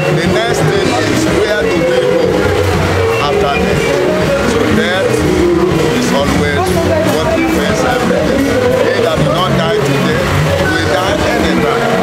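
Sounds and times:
man speaking: 0.0s - 2.4s, 3.1s - 12.0s.

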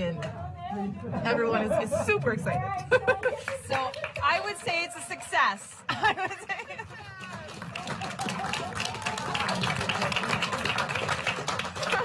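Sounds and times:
people clapping: 2.8s - 12.0s
voices cheering: 7.0s - 11.1s.

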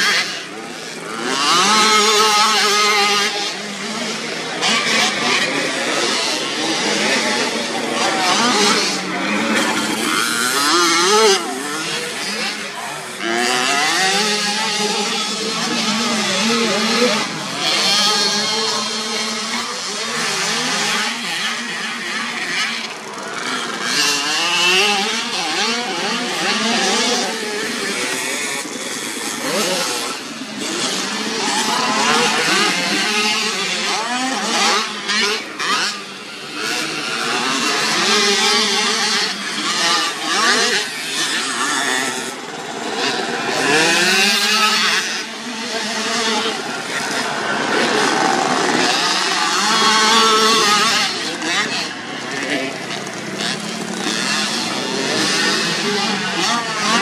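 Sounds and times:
motocross bikes revving: 0.0s - 57.0s.

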